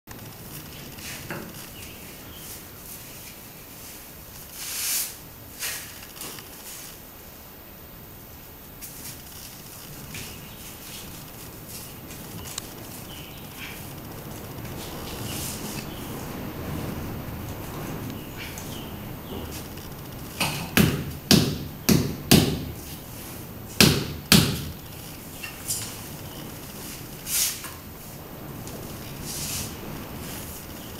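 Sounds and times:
short hiss: 0:04.5 - 0:06.0
short scrape: 0:04.5 - 0:06.0
scraping and rustling: 0:08.8 - 0:20.7, 0:24.8 - 0:30.9
knocks on cement floor tiles: 0:20.4 - 0:22.8, 0:23.8 - 0:24.8.

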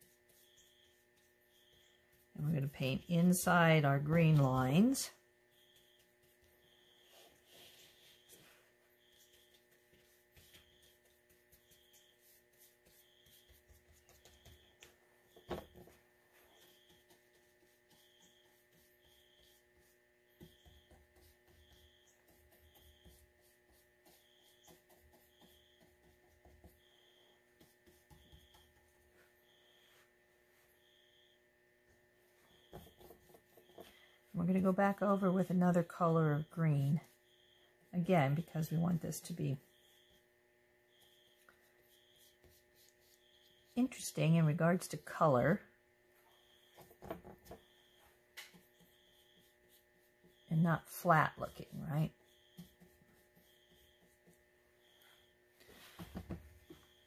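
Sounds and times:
brush strokes on paper: 0:00.0 - 0:31.0, 0:40.9 - 0:45.5, 0:47.5 - 0:56.2
electrical hum: 0:00.0 - 0:57.0.

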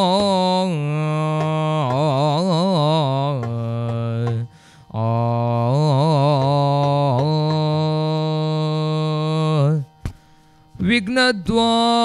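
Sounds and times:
man singing unaccompanied: 0:00.0 - 0:10.0, 0:10.8 - 0:12.0.

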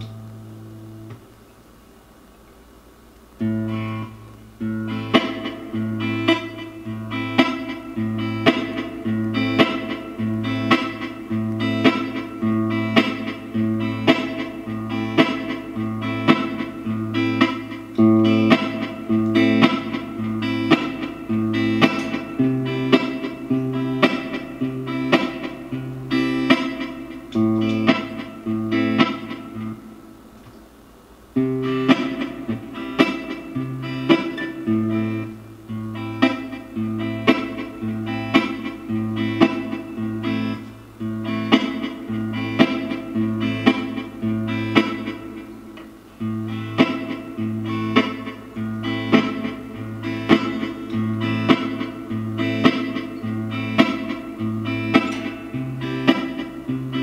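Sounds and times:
strummed guitar chords: 0:00.0 - 0:01.5, 0:03.2 - 0:30.6, 0:31.3 - 0:57.0.

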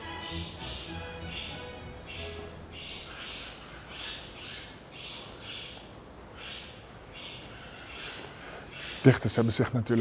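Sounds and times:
raspy hissing animal calls: 0:00.1 - 0:09.2.

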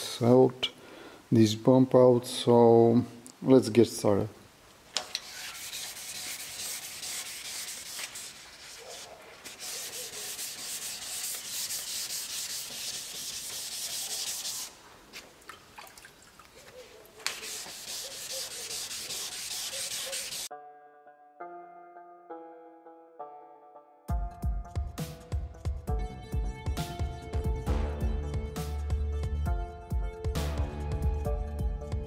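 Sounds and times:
sandpaper rubbing strokes: 0:05.2 - 0:15.2, 0:16.8 - 0:20.5
background music: 0:18.7 - 0:32.0.

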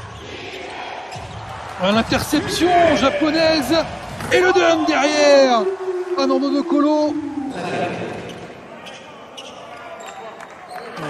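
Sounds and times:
arena crowd murmur: 0:05.1 - 0:11.0.

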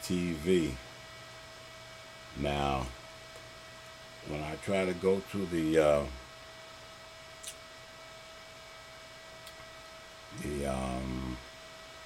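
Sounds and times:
electrical hum: 0:00.0 - 0:12.0
high steady whine: 0:00.0 - 0:12.0.

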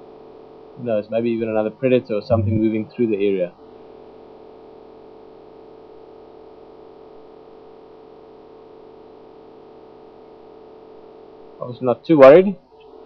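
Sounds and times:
electrical hum: 0:00.6 - 0:05.1.

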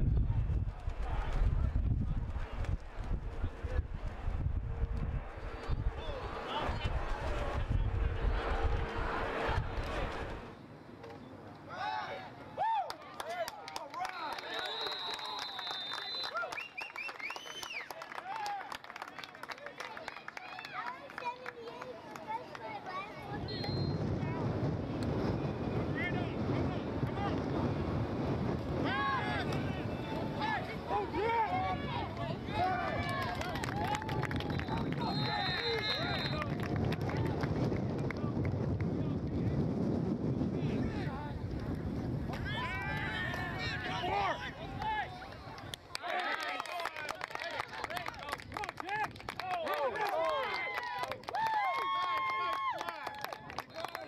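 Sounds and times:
wind buffeting microphone: 0:00.0 - 0:10.6, 0:22.7 - 0:45.9
referee whistle blast: 0:14.4 - 0:16.9, 0:34.6 - 0:36.5.

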